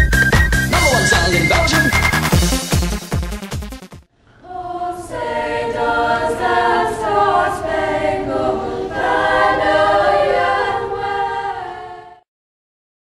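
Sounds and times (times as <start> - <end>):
girls choir singing: 4.3 - 12.2.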